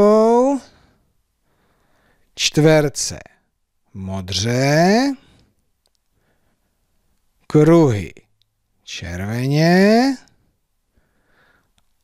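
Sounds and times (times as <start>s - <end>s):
man speaking: 0.0s - 0.8s, 2.4s - 5.3s, 7.4s - 10.3s
faint clicks: 5.5s - 6.2s, 11.6s - 12.0s.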